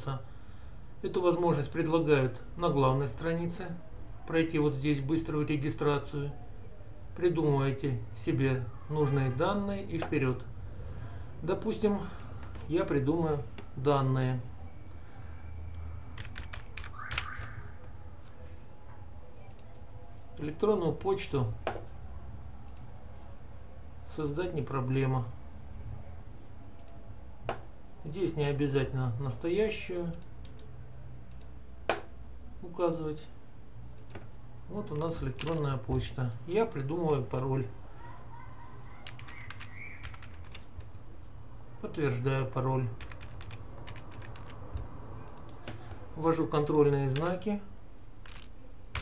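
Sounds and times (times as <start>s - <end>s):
computer keyboard keystrokes: 16.2s - 17.5s, 34.9s - 35.7s, 39.0s - 40.9s, 43.0s - 46.0s, 48.2s - 49.0s.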